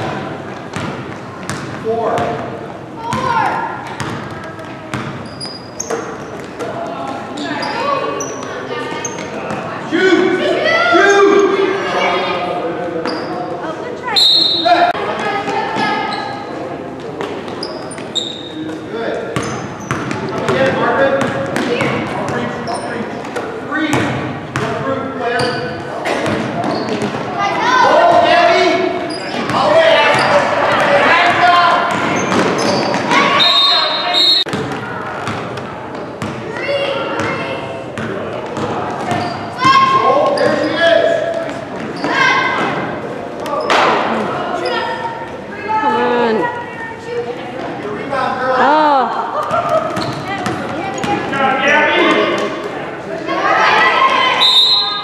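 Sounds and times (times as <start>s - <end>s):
basketball bouncing on wooden floor: 3.9s - 5.2s.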